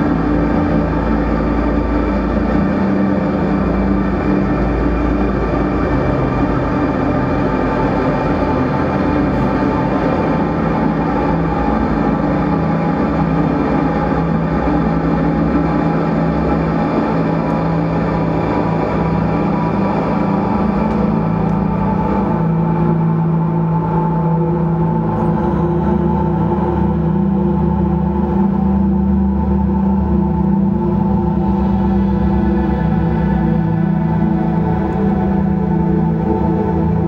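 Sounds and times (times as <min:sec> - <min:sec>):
ambient drone electric guitar: 0:00.0 - 0:37.0.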